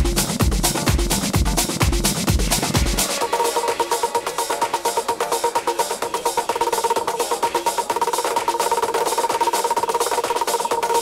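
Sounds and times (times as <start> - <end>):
electronic music with clicking percussion: 0.0 - 11.0.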